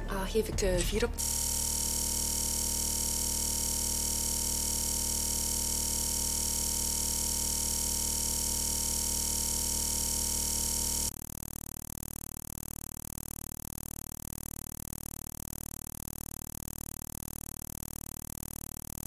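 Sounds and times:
steady electronic buzz: 1.1s - 19.0s.

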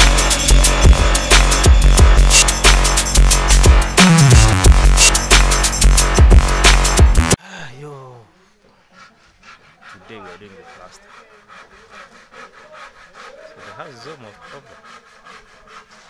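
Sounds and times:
hand saw cutting wood: 0.0s - 7.0s, 8.9s - 16.0s.

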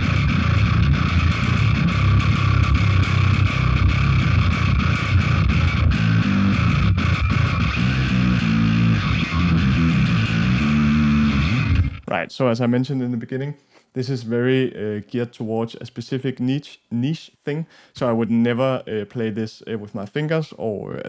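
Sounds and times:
distorted bass guitar riffing: 0.0s - 12.2s.

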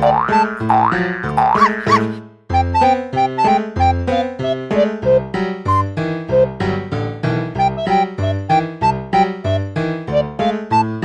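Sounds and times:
cartoon boing effects: 0.0s - 2.2s
keyboard chords: 0.0s - 11.0s.

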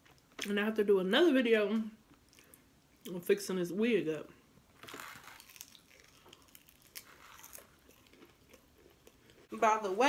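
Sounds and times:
person chewing crunchy food: 4.8s - 9.5s.

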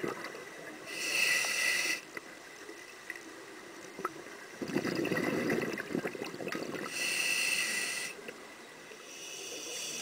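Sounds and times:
hissing inhale through regulator: 0.9s - 2.1s, 6.8s - 8.3s, 9.0s - 10.0s
exhale bubbling underwater: 4.6s - 7.0s.

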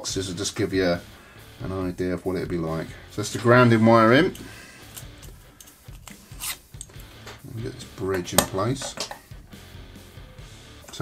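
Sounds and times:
metal part rubbing in fingers: 4.8s - 7.0s.

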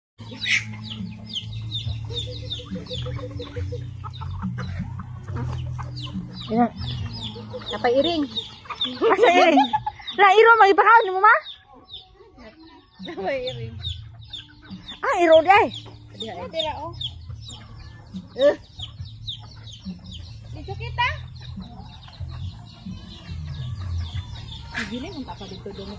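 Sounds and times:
chickens clucking: 0.2s - 25.9s.

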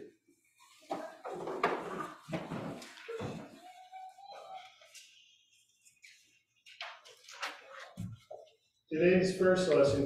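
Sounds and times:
people sitting in wooden pews: 0.0s - 10.0s.

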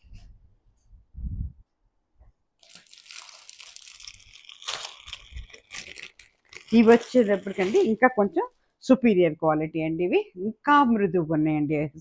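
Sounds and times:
plastic packaging crinkling: 2.6s - 8.6s.

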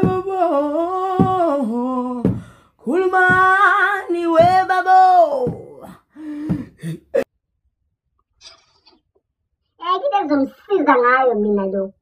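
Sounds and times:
person humming a tune: 0.0s - 2.4s
short low thuds: 2.2s - 2.6s, 6.4s - 6.8s.

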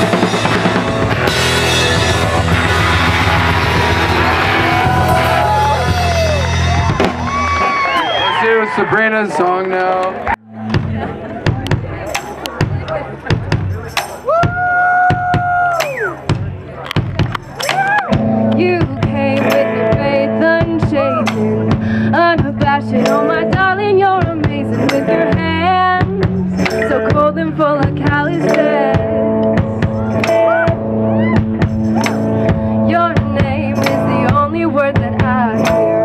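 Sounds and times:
drum kit beats and cymbals: 0.0s - 8.4s, 10.6s - 36.0s
electric guitar: 0.0s - 8.4s, 16.8s - 36.0s
live band playing: 0.0s - 36.0s
woman singing: 18.5s - 29.5s, 32.7s - 36.0s.

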